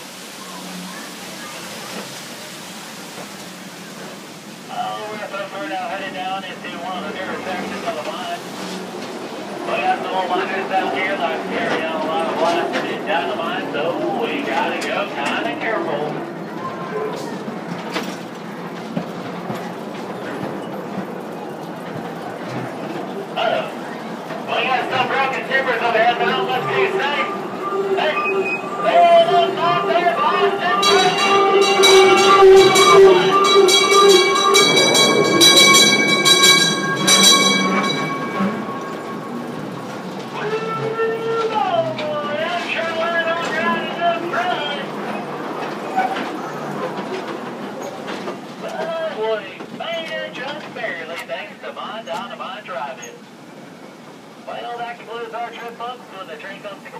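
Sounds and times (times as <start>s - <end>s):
ride train running: 0.0s - 56.9s
loud long whistle-like tone: 26.6s - 34.8s.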